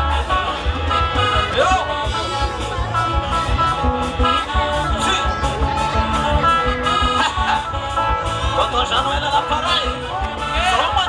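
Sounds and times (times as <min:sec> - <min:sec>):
live band through loudspeakers: 0:00.0 - 0:11.0.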